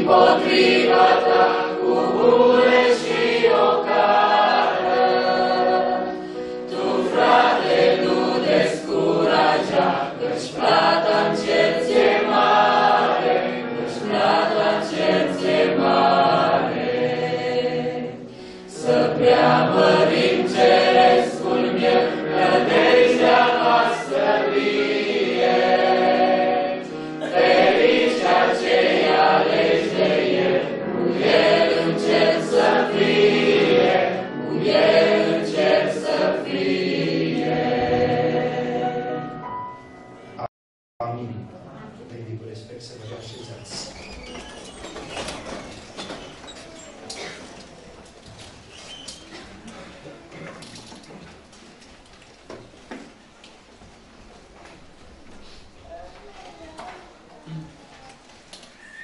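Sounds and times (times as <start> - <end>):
group singing a hymn: 0.0 - 39.4.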